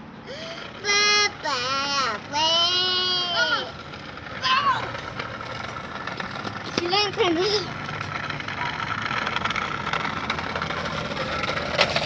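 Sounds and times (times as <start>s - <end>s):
toy electric motor whining: 0.4s - 3.8s
plastic wheels rolling: 0.7s - 12.0s.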